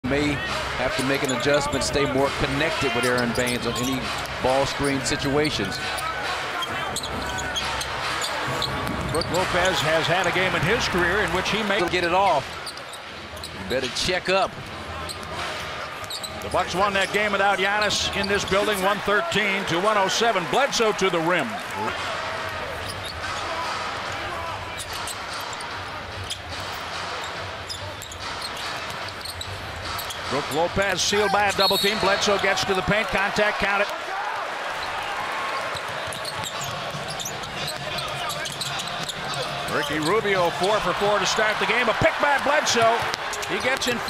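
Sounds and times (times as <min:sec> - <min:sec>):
arena crowd noise: 0:00.0 - 0:44.0
sneakers squeaking on floor: 0:00.9 - 0:19.8, 0:22.7 - 0:23.7, 0:24.6 - 0:33.1, 0:34.6 - 0:44.0.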